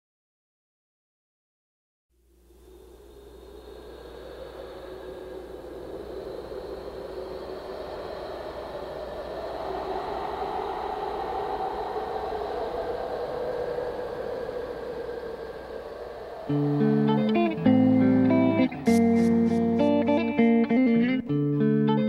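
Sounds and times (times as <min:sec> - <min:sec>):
low hum: 0:02.2 - 0:21.8
hazy whooshing wash: 0:02.5 - 0:22.0.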